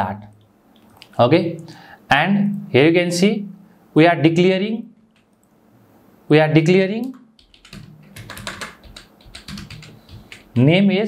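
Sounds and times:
typing on computer keyboard: 7.0 - 10.6.

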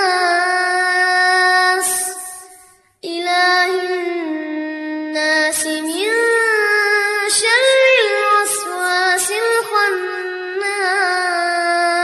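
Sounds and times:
child reciting melodically: 0.0 - 12.0.

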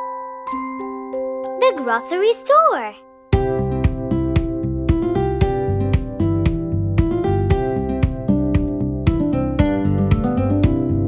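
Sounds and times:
instrumental children's song music: 0.0 - 11.0.

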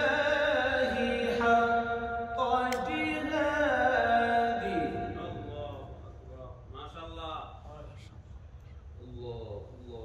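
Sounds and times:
man reciting melodically: 0.0 - 7.7.

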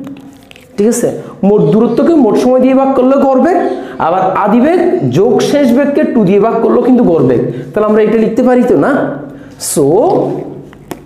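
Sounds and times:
man speaking: 0.8 - 10.7.

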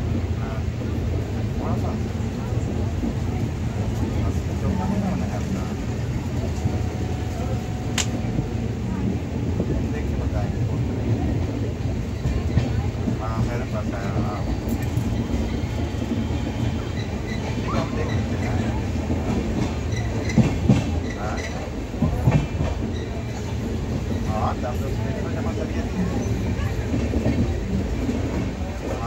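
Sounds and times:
train wheels rumbling on rails: 0.0 - 29.0.

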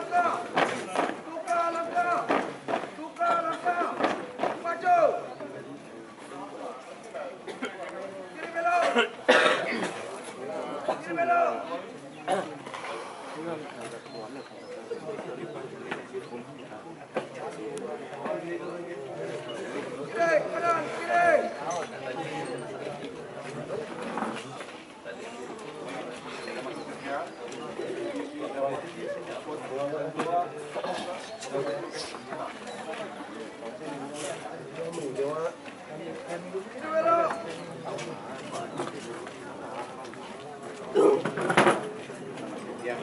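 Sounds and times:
people calling: 0.0 - 5.6
overlapping voices talking: 0.0 - 43.0.

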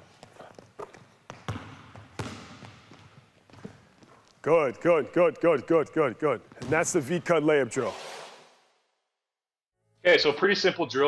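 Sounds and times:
basketballs bouncing on gym floor: 0.1 - 4.2, 6.5 - 7.0.

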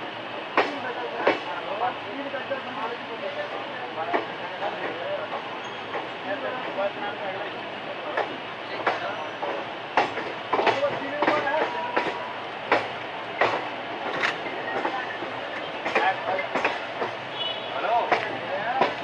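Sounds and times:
train coach rumble: 0.0 - 19.0
train wheel clicks: 2.8 - 6.8, 8.1 - 17.2, 18.0 - 19.0.

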